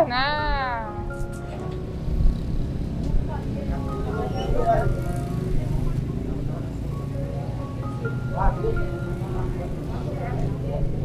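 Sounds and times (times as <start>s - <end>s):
faint background music: 0.0s - 11.0s
vehicle engine rumble: 0.0s - 11.0s
indistinct voices: 3.2s - 11.0s.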